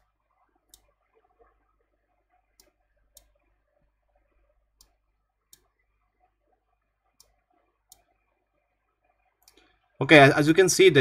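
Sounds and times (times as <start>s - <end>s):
computer mouse clicks: 0.6s - 1.0s, 2.5s - 3.5s, 4.8s - 5.8s, 7.1s - 8.2s, 9.4s - 9.7s.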